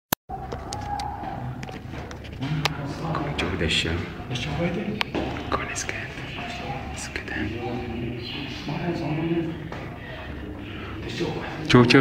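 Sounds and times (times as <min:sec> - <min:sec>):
street noise: 0:00.3 - 0:12.0.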